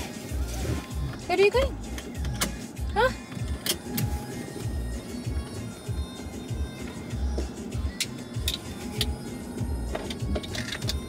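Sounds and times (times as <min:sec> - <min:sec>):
background music: 0:00.0 - 0:11.0
car cabin rumble: 0:00.0 - 0:11.0.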